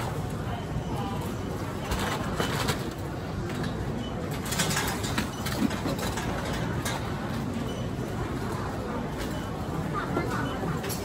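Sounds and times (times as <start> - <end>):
background hum and hubbub: 0.0 - 11.0.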